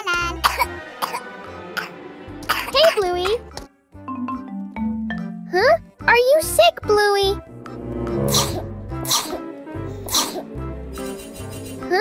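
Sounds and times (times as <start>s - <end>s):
light children's music: 0.0s - 12.0s.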